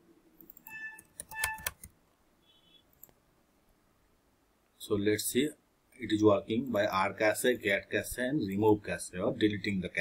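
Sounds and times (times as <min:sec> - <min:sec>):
computer keyboard typing: 0:00.4 - 0:01.9.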